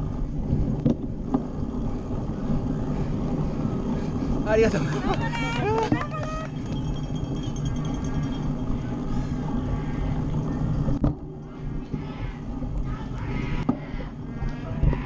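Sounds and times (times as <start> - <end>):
voices calling out: 4.3 - 10.8.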